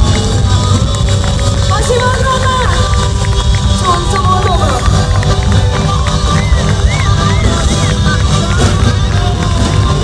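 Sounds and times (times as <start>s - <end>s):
live pop band playing: 0.0s - 10.0s.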